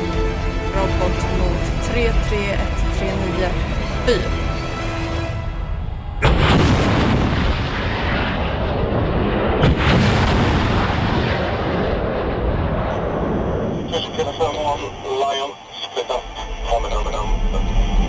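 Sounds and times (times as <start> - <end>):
missile launch blast: 6.2 - 14.3.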